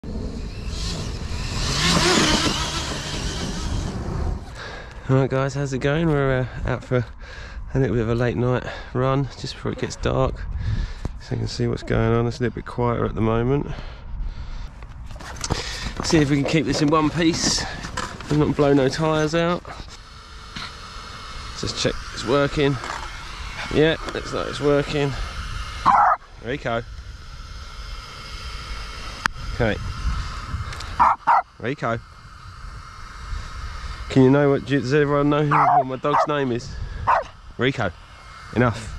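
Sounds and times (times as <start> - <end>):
faint high hum: 0.0 - 38.9
rc car running across grass: 0.1 - 4.6, 15.1 - 26.2.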